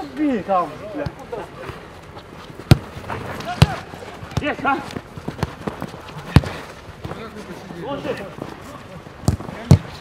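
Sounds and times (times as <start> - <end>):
football kick thuds: 2.6 - 4.6, 9.2 - 10.0
players shouting: 2.6 - 10.0.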